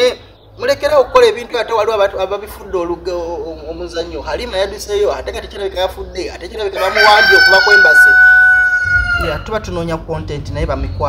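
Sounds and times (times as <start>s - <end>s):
rooster crowing: 6.7s - 9.6s.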